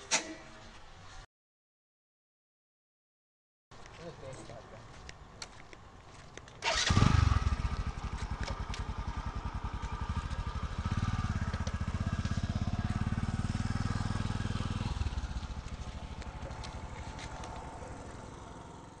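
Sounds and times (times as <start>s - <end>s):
motorcycle engine starting and running: 6.6s - 19.0s.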